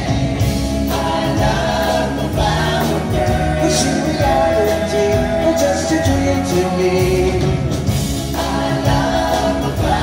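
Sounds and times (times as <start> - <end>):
live pop-rock band playing: 0.0 - 10.0
voices singing in harmony: 0.0 - 10.0.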